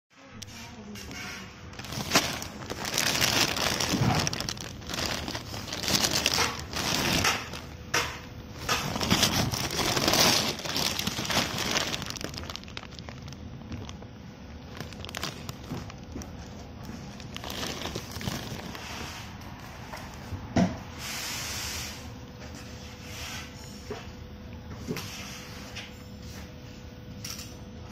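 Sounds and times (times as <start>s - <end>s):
plastic bags crinkling: 1.6s - 19.1s.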